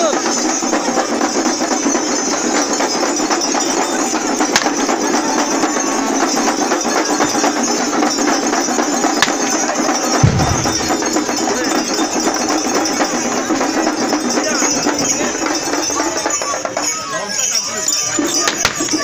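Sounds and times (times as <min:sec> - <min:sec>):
festive music: 0:00.0 - 0:19.0
large crowd noise: 0:00.0 - 0:19.0
drum strikes: 0:10.0 - 0:14.3.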